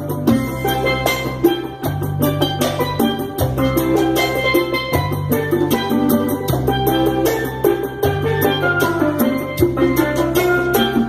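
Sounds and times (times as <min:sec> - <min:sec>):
congas: 0:00.0 - 0:11.0
steel pan melody: 0:00.0 - 0:11.0.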